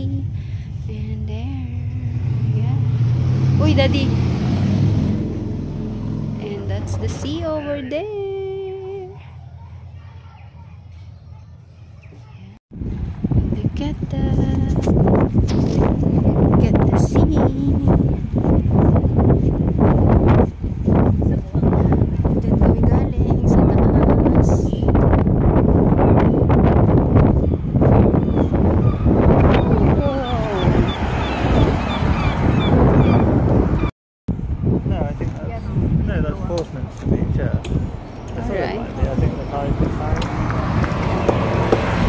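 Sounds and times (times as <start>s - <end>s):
car driving by: 2.0s - 7.7s, 28.6s - 33.9s, 37.9s - 42.0s
wind buffeting microphone: 12.0s - 42.0s
indistinct voices: 28.9s - 31.2s.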